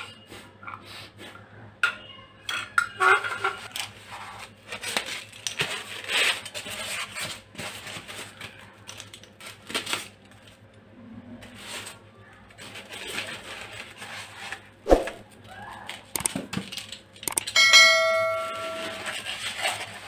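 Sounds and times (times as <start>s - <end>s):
metal lamp arm clinking on tiles: 17.4s - 19.2s.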